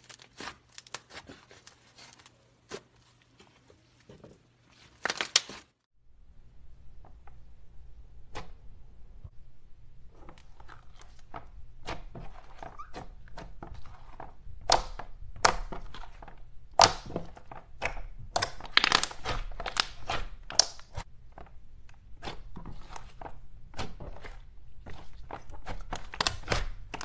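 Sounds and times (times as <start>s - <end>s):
slime squeak: 12.4s - 13.4s.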